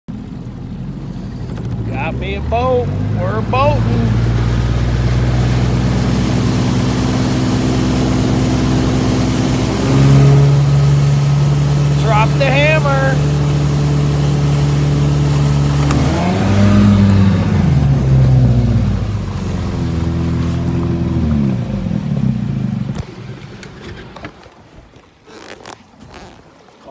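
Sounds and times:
outboard motor running: 0.1s - 26.9s
water and wind hiss: 0.1s - 26.9s.

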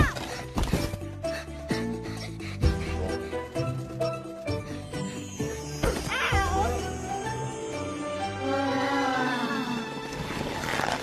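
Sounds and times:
film score with sustained tones: 1.3s - 11.0s.

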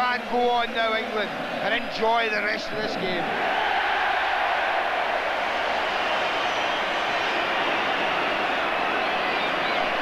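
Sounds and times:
stadium crowd roaring and cheering: 0.0s - 10.0s.

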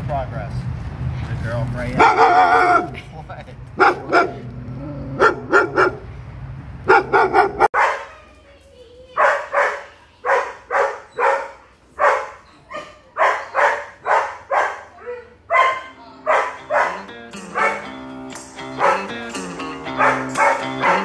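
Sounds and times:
dog barking: 2.0s - 2.9s, 3.8s - 4.4s, 5.2s - 6.1s, 6.9s - 8.2s, 9.2s - 17.9s, 18.8s - 19.2s, 19.9s - 21.0s.

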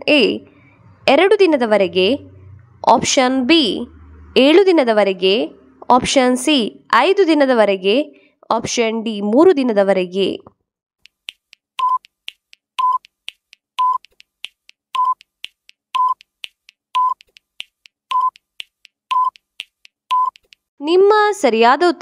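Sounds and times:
sharp timer ticks: 11.0s - 20.7s
countdown timer beeps: 11.8s - 12.2s, 12.8s - 13.2s, 13.8s - 14.1s, 15.0s - 15.3s, 16.0s - 16.3s, 17.0s - 17.3s, 18.1s - 18.5s, 19.1s - 19.4s, 20.1s - 20.4s.

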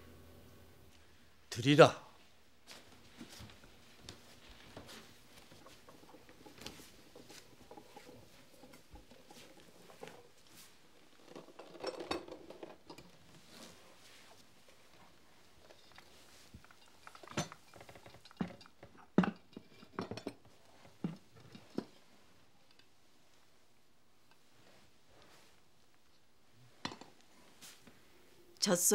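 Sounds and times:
soft rustle: 2.2s - 11.3s, 13.2s - 17.0s, 20.5s - 28.4s.

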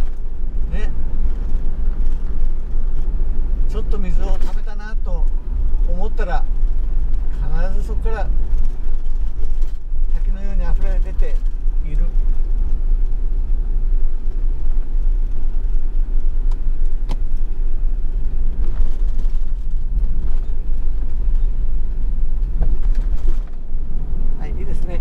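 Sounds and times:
road and engine rumble inside a van: 0.0s - 25.0s.

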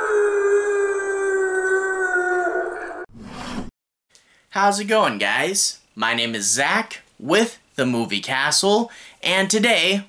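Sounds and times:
wolf-like howl: 0.0s - 3.1s.

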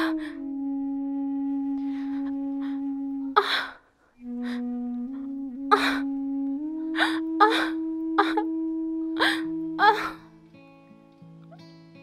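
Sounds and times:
slow flute-like music: 0.0s - 12.0s
woman gasping in pain: 9.2s - 10.2s.

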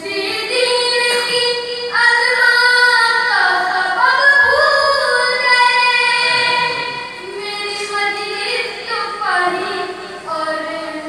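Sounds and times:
boy singing unaccompanied: 0.0s - 11.0s.

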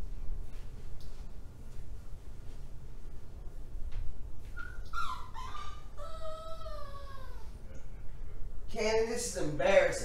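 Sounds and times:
pet whining: 4.5s - 7.6s.

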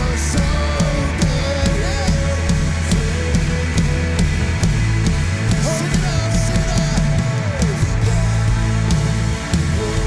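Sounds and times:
drum kit beat: 0.0s - 10.0s
worship band playing: 0.0s - 10.0s.

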